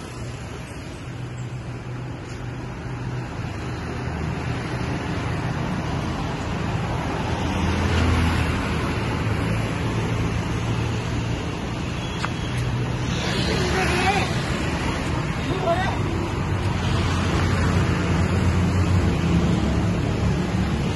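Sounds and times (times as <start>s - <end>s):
road traffic rumble: 0.0s - 20.9s.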